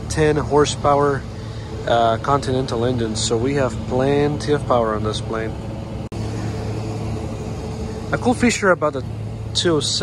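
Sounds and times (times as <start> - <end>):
machinery humming and rumbling: 0.0 - 10.0.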